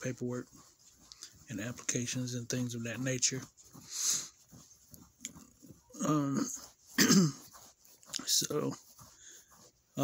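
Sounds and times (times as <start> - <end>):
man snorting breath: 3.8 - 4.4.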